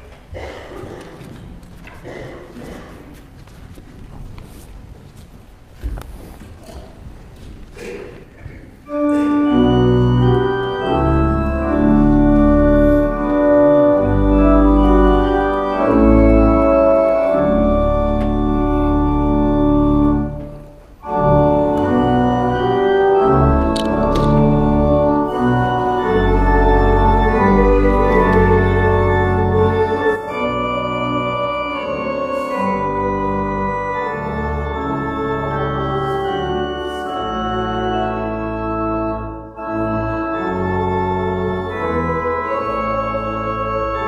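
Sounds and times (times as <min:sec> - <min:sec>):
church organ playing a hymn: 0:08.8 - 0:44.0.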